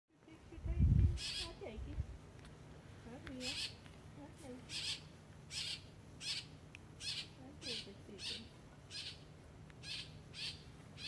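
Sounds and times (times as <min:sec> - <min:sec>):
buzzy high bird calls: 0:01.1 - 0:01.6, 0:03.4 - 0:03.8, 0:04.6 - 0:11.0
low hooting bird notes: 0:04.6 - 0:11.0.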